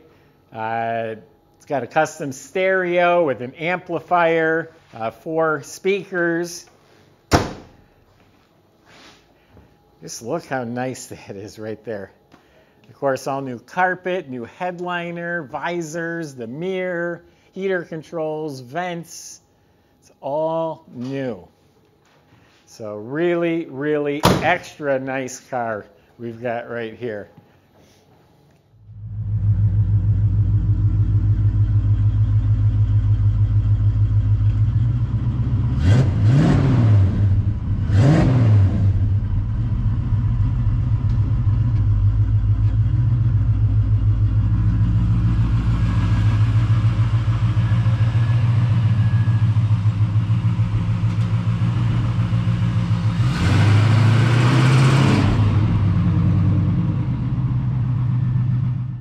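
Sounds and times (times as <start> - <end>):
car engine idling and revving: 28.8 - 59.0.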